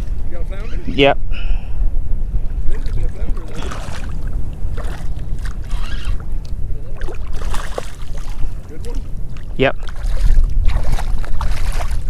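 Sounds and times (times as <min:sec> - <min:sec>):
wind rumble on microphone: 0:00.0 - 0:12.0
fish splashing in shallow water: 0:02.7 - 0:12.0.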